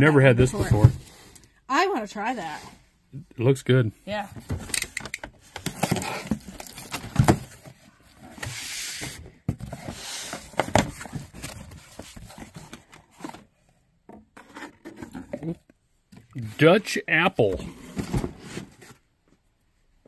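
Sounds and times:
cardboard boxes rustling and scraping: 0:00.2 - 0:01.2, 0:05.4 - 0:15.6, 0:17.4 - 0:19.1.

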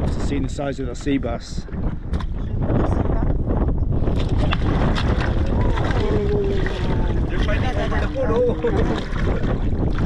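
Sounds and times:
wind buffeting microphone: 0:00.0 - 0:10.0
fish thrashing and splashing: 0:04.0 - 0:10.0.

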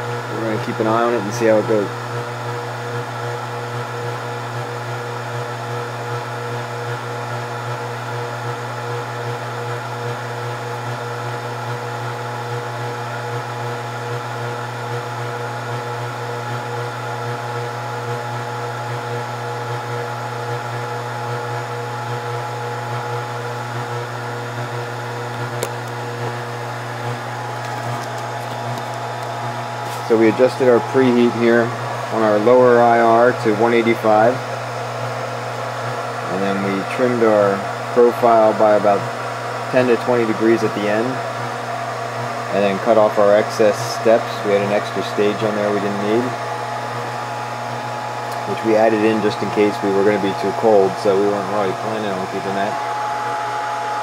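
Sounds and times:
hot-air blower and fans whirring: 0:00.0 - 0:54.0.

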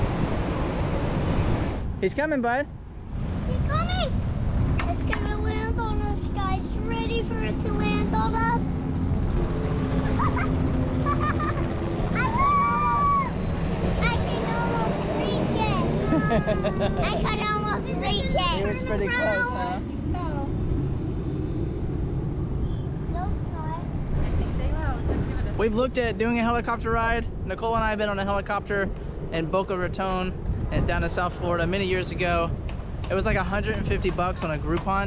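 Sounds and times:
helicopter flying overhead: 0:00.0 - 0:02.3, 0:03.0 - 0:35.0
children's excited voices: 0:10.0 - 0:13.4, 0:14.0 - 0:19.8.

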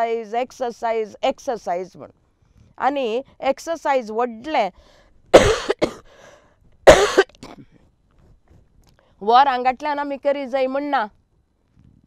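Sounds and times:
woman coughing: 0:05.4 - 0:06.1, 0:06.9 - 0:07.8
faint catch of breath: 0:06.0 - 0:06.7.

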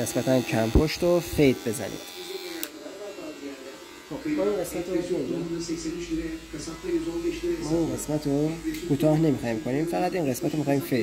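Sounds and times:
electric hair clipper buzzing: 0:00.0 - 0:11.0.

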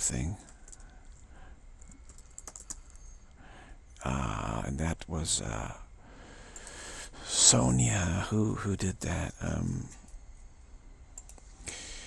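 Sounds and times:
faint clicks: 0:00.4 - 0:03.4, 0:06.5 - 0:06.8, 0:11.2 - 0:11.5.

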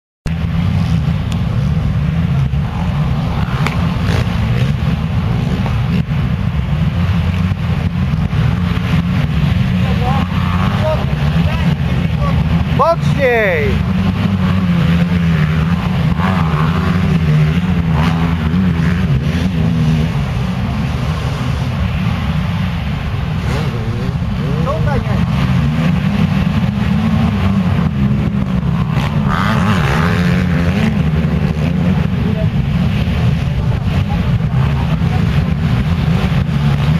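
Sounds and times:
motorcycle engines revving: 0:00.3 - 0:36.9.

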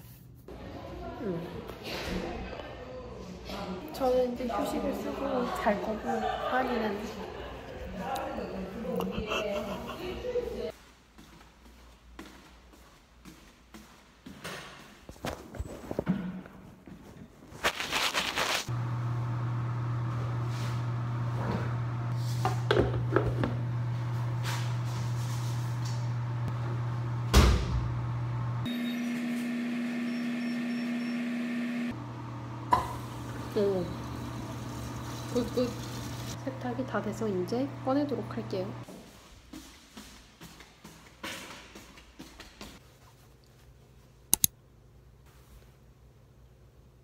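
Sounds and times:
washing machine humming: 0:18.7 - 0:38.9.

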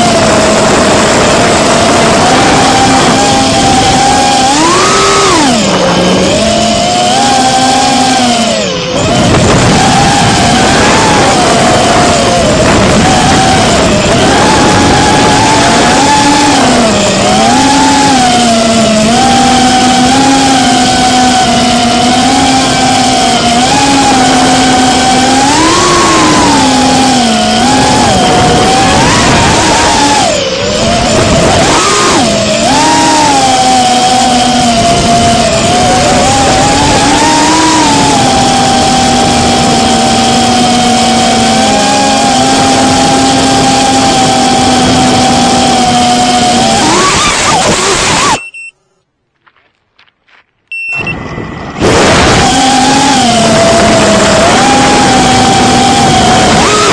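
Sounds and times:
drone propellers whining: 0:00.0 - 0:48.7, 0:50.7 - 0:56.9.

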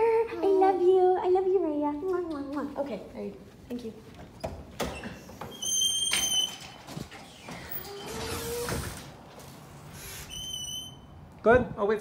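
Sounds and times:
door squeak: 0:04.4 - 0:09.1, 0:10.2 - 0:11.1.

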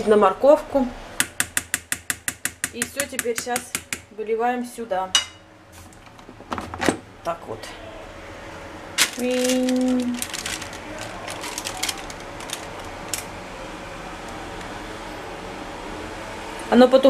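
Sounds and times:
steady hum: 0:00.0 - 0:17.0.

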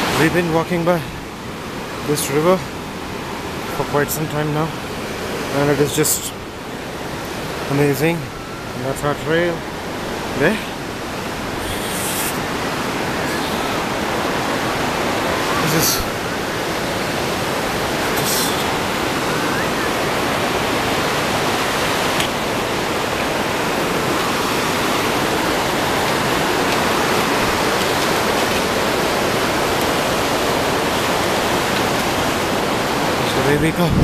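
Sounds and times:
river rushing over rapids: 0:00.0 - 0:34.0.

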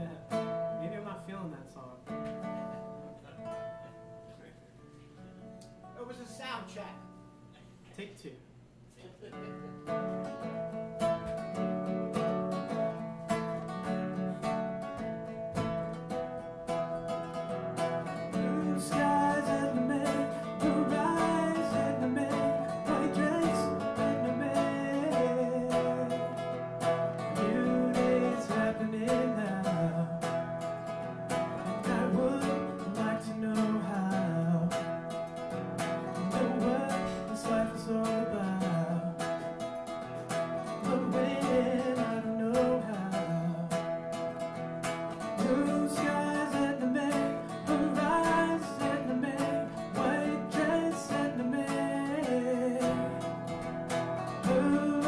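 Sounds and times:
strummed acoustic guitar: 0:00.0 - 0:07.5, 0:09.3 - 0:55.0
man singing: 0:18.1 - 0:26.6, 0:27.2 - 0:30.6, 0:31.6 - 0:34.9, 0:36.1 - 0:39.6, 0:40.6 - 0:43.9, 0:45.2 - 0:53.6, 0:54.3 - 0:55.0.

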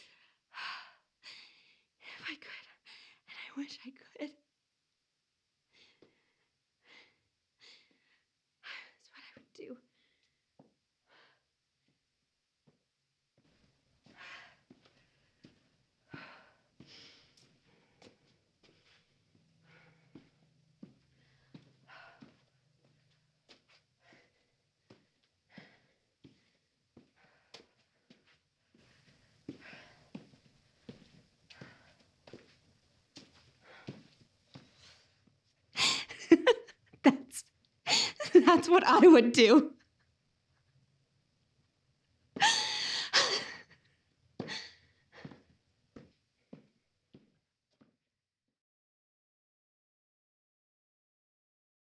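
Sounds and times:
woman breathing quickly: 0:00.0 - 0:03.3, 0:05.7 - 0:10.4, 0:11.0 - 0:11.6, 0:14.0 - 0:36.8, 0:37.9 - 0:38.3, 0:42.4 - 0:46.7.

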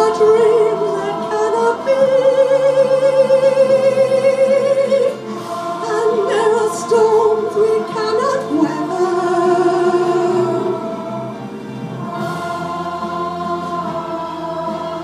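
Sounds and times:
mixed choir singing: 0:00.0 - 0:15.0.

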